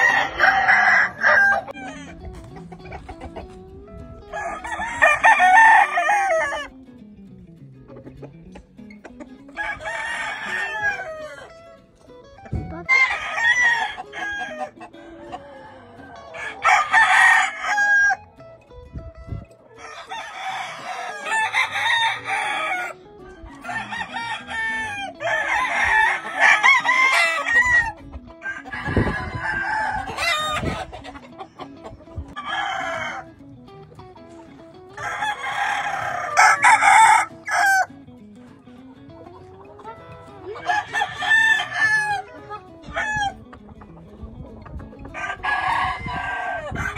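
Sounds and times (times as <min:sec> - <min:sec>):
roosters crowing: 0:00.0 - 0:03.4, 0:04.2 - 0:06.7, 0:09.4 - 0:11.9, 0:12.7 - 0:18.3, 0:19.7 - 0:33.4, 0:34.8 - 0:38.0, 0:39.4 - 0:44.0, 0:44.9 - 0:46.9.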